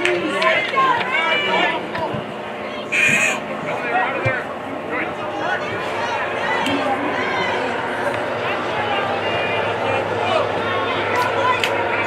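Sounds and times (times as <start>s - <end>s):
people shouting: 2.8s - 3.4s.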